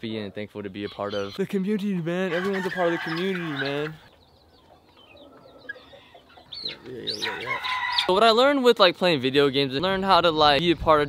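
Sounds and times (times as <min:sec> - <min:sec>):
chickens cheeping and clucking: 0:00.0 - 0:08.4.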